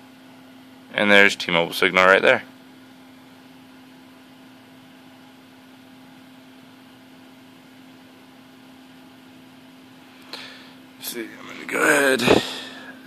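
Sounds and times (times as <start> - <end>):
constant low hum: 0.0 - 13.0.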